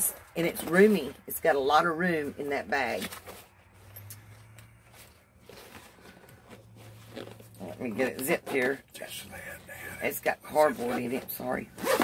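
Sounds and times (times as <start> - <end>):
fabric bag rustling: 2.9 - 8.8.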